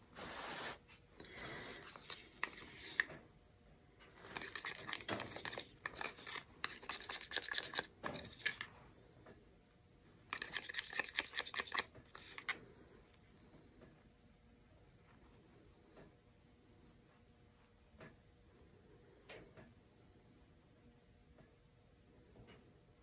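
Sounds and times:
spatula scraping plastic cup: 0.6s - 3.2s, 4.2s - 8.7s, 10.3s - 12.6s.

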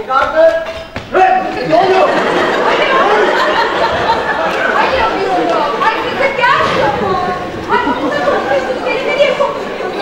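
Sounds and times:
actors talking: 0.0s - 10.0s.

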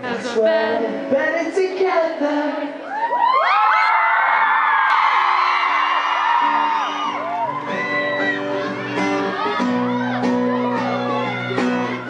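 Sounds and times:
audience screaming and cheering: 2.7s - 12.0s.

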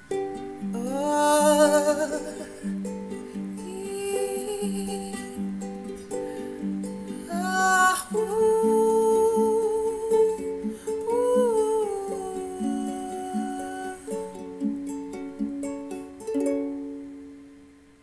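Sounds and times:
person humming a melody: 0.0s - 15.4s
ukulele playing: 0.0s - 18.0s.

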